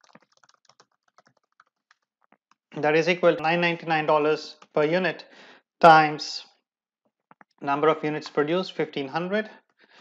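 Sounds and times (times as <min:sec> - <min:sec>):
computer keyboard typing: 0:00.0 - 0:02.7.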